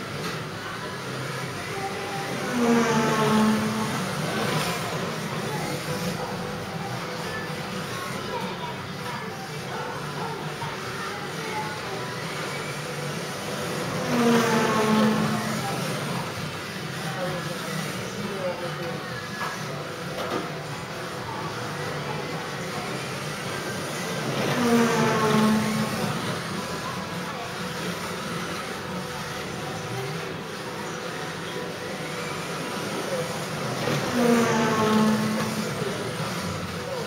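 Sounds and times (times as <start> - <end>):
rc car electric motors whining: 0.0 - 37.0
steady background hum: 0.0 - 37.0.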